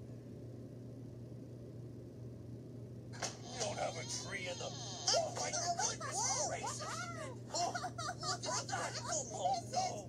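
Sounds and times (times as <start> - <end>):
steady low hum: 0.0 - 10.0
high wordless vocal cries: 3.5 - 9.8.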